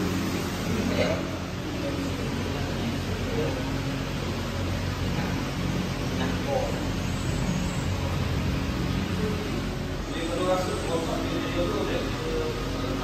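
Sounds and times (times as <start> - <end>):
distant indistinct voices: 0.0 - 13.0
workshop hiss and hum: 0.0 - 13.0.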